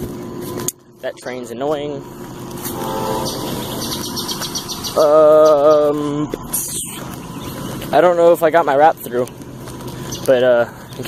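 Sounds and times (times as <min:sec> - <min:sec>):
train rumbling: 0:01.2 - 0:09.0
bird chirping: 0:02.4 - 0:08.2, 0:10.0 - 0:11.0.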